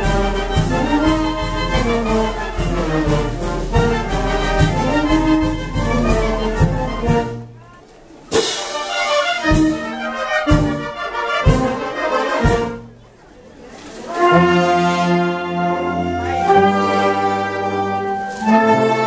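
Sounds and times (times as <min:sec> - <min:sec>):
wind band playing: 0:00.0 - 0:19.0.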